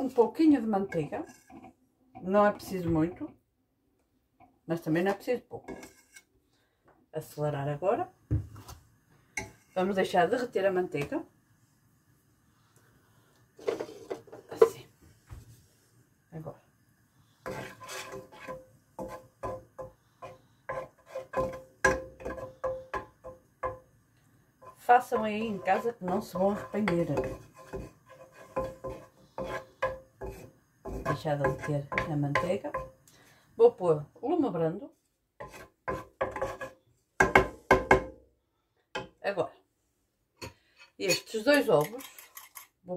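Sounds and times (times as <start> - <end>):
wooden spatula scraping frying pan: 0.0 - 3.1, 5.5 - 6.3, 13.6 - 14.8, 17.4 - 23.9, 24.5 - 33.1, 35.4 - 38.0
butter melting in pan: 15.6 - 33.3.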